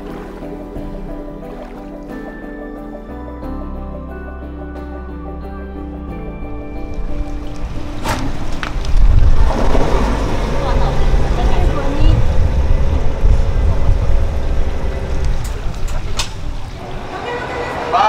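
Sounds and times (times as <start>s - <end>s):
background music: 0.0s - 15.5s
loud low rumble: 8.4s - 17.0s
people talking: 10.6s - 12.4s, 16.8s - 18.0s.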